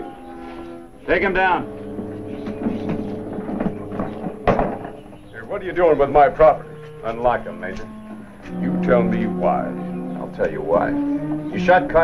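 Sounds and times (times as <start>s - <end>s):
faint shuffling: 0.0s - 12.0s
heavy wooden thump: 1.6s - 5.5s.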